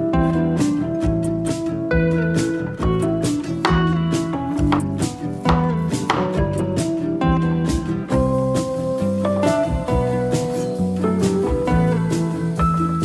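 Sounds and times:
acoustic guitar music: 0:00.0 - 0:13.0.

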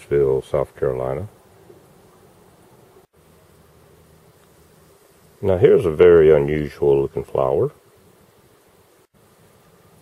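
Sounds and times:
faint low buzz: 0:00.0 - 0:10.0.

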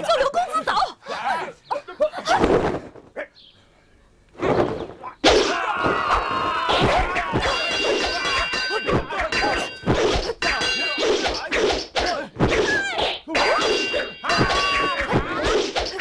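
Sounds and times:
fight hit impacts: 0:04.4 - 0:12.7
ringing metallic clangs: 0:07.4 - 0:11.4, 0:13.3 - 0:15.2.

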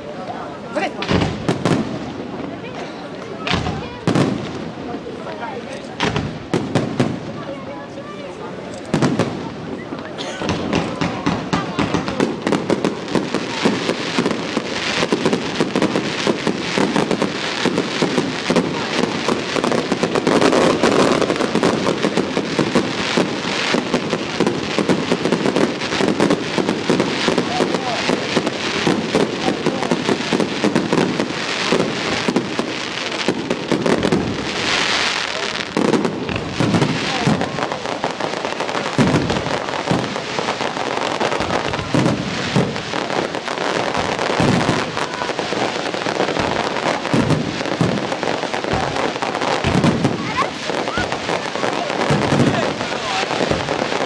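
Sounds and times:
fireworks bangs and crackling: 0:00.0 - 0:54.0.

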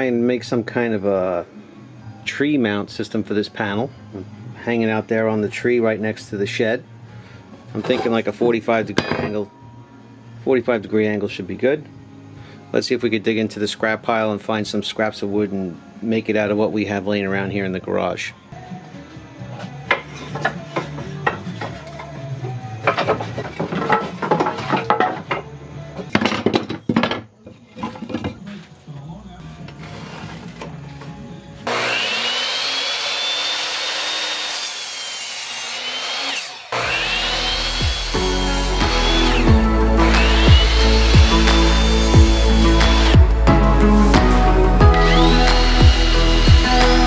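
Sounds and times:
background music: 0:00.0 - 0:47.0
scrap wood knocks: 0:22.8 - 0:27.2
miter saw cutting wood: 0:31.6 - 0:47.0.

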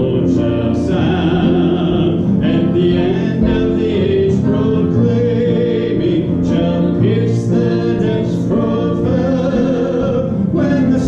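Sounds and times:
keyboard accompaniment: 0:00.0 - 0:11.0
voices singing gospel chorus: 0:00.0 - 0:11.0.

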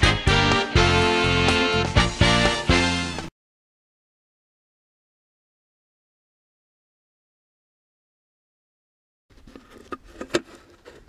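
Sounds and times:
small can handled rustling: 0:09.3 - 0:11.0.

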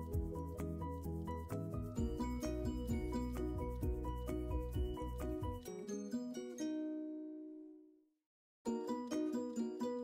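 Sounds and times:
plucked string music: 0:00.0 - 0:07.8, 0:08.7 - 0:10.0.

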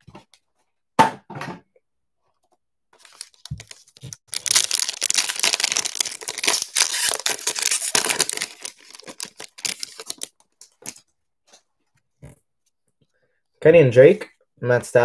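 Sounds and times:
foil wrapper crinkling: 0:03.0 - 0:11.0.

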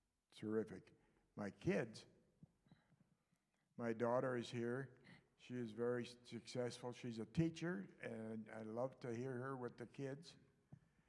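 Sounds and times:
man speaking: 0:00.3 - 0:02.2, 0:03.6 - 0:10.6.

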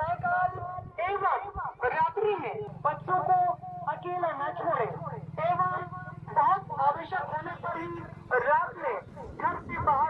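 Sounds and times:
announcement over loudspeakers: 0:00.0 - 0:10.0.

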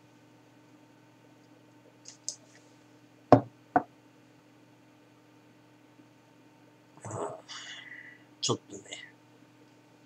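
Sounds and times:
glass knocking on wooden table: 0:03.3 - 0:03.9.

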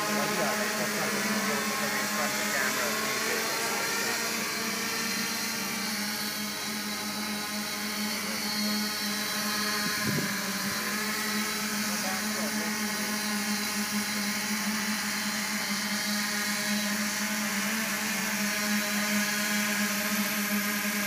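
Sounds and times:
drone motors buzzing: 0:00.0 - 0:21.0.

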